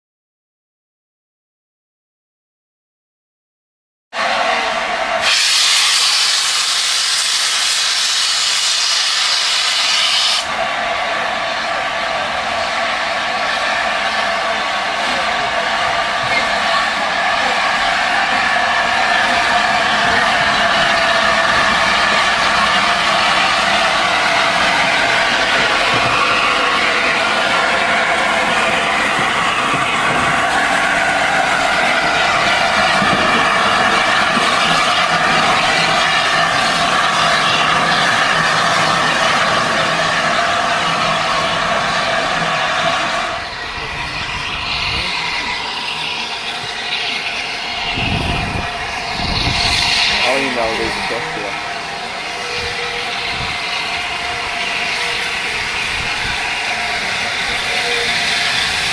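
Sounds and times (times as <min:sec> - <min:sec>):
steam locomotive hissing steam: 0:04.3 - 0:58.9.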